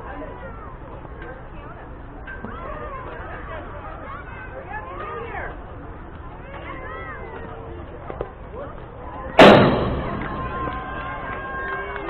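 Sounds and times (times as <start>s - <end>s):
baseball striking fence: 9.4s - 11.2s
fence ringing: 9.4s - 11.2s.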